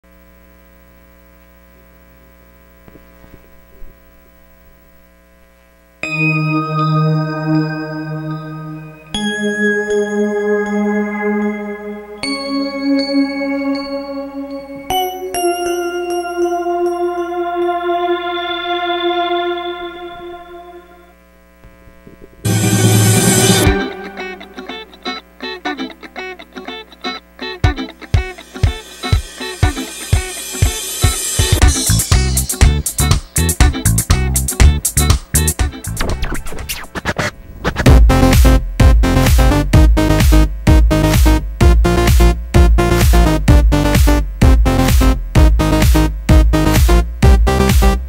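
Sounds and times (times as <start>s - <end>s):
electrical mains hum: 0.0s - 48.0s.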